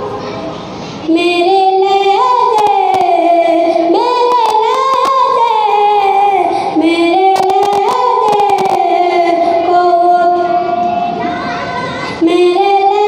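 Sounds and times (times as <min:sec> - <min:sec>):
boy singing unaccompanied: 0:01.1 - 0:13.0.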